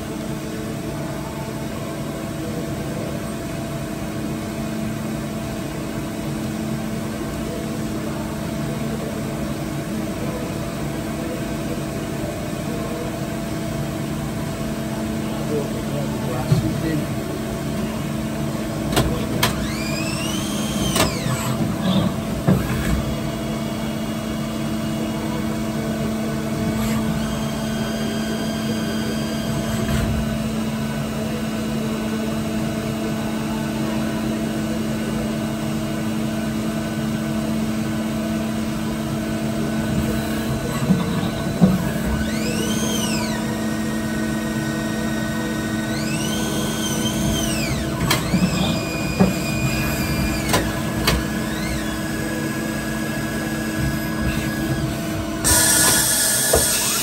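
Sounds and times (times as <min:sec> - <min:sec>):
lathe humming: 0:15.4 - 0:31.7, 0:38.5 - 0:57.0
motor whines: 0:18.9 - 0:23.8, 0:26.5 - 0:30.4, 0:39.7 - 0:57.0.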